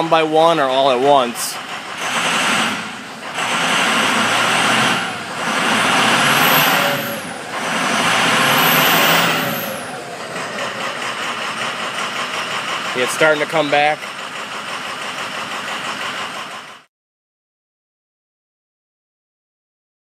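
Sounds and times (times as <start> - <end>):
diesel engine revving: 0.0 - 16.9
rough engine idle: 0.0 - 16.9
turbo whine: 1.9 - 11.0.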